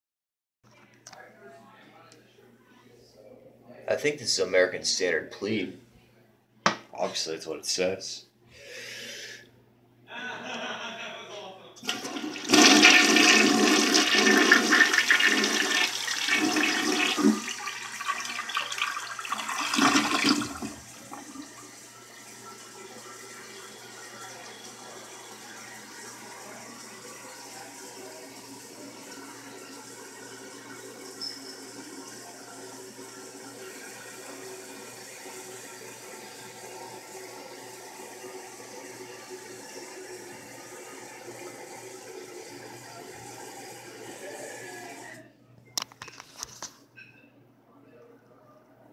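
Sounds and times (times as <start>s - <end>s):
toilet flushing: 11.8s - 45.2s
toilet refilling hiss: 11.8s - 45.2s.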